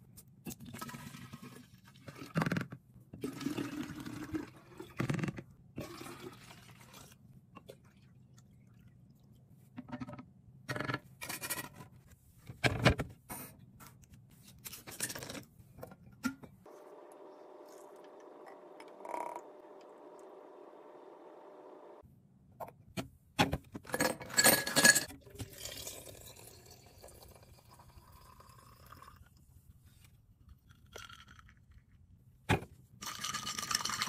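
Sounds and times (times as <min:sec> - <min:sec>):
liquid pouring into glass pitcher: 0:05.8 - 0:09.3, 0:25.1 - 0:29.3.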